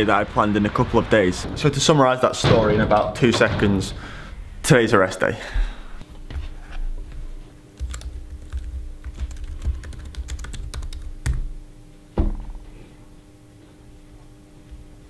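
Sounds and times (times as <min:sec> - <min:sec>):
laptop keyboard typing: 0:07.8 - 0:11.5.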